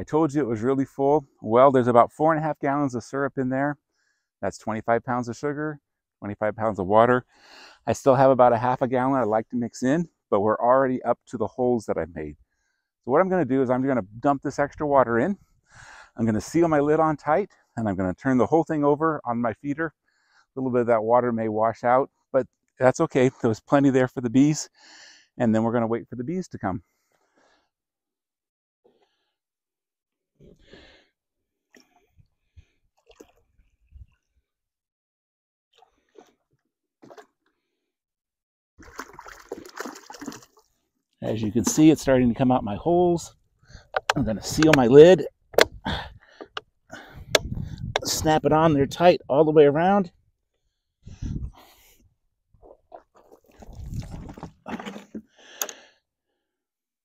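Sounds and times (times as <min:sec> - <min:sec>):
faint splashes and knocks: 0:31.7 - 0:33.8, 0:35.8 - 0:37.5, 0:38.8 - 0:40.7, 0:52.6 - 0:55.3
water pouring into bucket: 0:38.8 - 0:40.7, 0:52.9 - 0:55.2
plastic bucket handling scrapes: 0:52.6 - 0:55.7.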